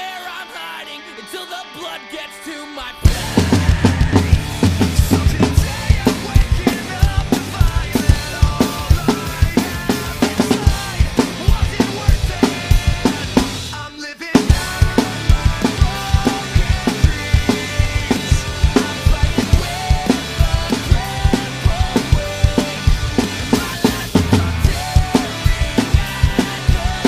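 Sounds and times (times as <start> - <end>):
recorded song: 0.0 - 27.0
drum kit beat: 3.0 - 27.0.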